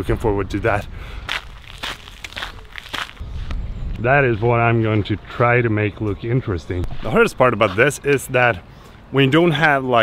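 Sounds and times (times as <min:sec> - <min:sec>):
footsteps crunching on gravel: 0:01.2 - 0:03.2.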